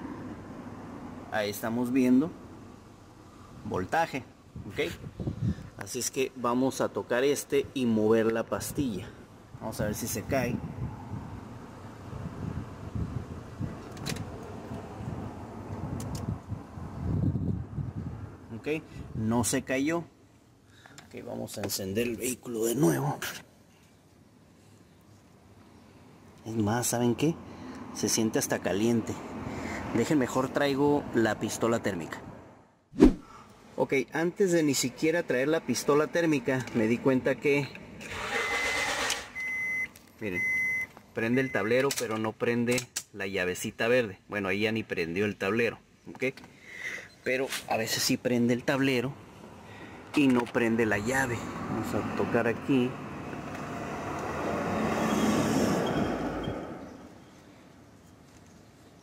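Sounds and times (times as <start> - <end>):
high-pitched dashboard warning beeps: 38.4 - 41.7.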